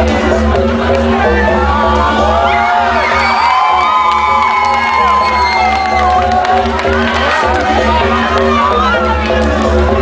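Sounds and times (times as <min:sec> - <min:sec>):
electronic dance music: 0:00.0 - 0:10.0
crowd whooping and shouting: 0:01.1 - 0:10.0.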